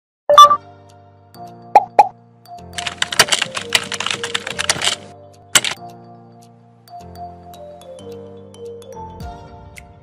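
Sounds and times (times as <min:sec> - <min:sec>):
light background music: 0:00.3 - 0:10.0
keyboard typing clicks: 0:02.8 - 0:05.8.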